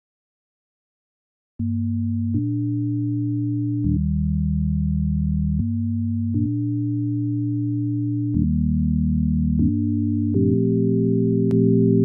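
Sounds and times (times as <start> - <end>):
synthesizer low sustained chords: 1.6 - 12.0.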